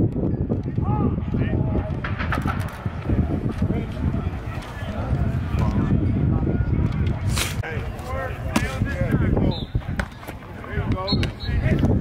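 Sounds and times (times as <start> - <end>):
people talking indistinctly: 0.6 - 12.0.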